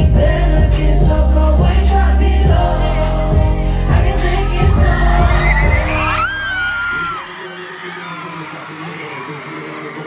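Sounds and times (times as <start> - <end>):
live heavy-bass song with vocals: 0.0 - 7.3
high voice gliding: 1.4 - 7.2
crowd whooping and shouting: 3.9 - 10.0.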